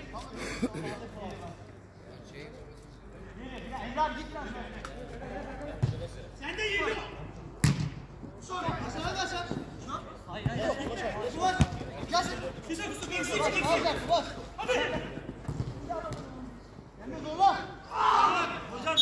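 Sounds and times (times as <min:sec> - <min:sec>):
football kicked: 0:07.6 - 0:08.0, 0:11.5 - 0:12.0, 0:15.4 - 0:16.3
players shouting: 0:17.2 - 0:19.0.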